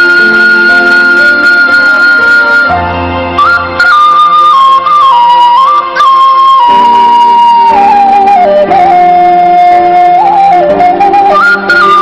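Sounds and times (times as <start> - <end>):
band sustained chords: 0.0 - 12.0
flute melody: 0.0 - 12.0.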